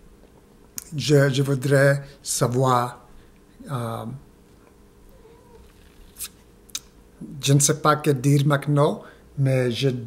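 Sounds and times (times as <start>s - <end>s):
man's mouth clicks: 6.2s - 7.0s.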